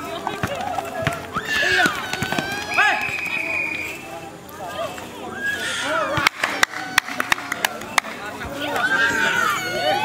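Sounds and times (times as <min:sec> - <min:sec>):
people shouting and calling out: 0:00.0 - 0:10.0.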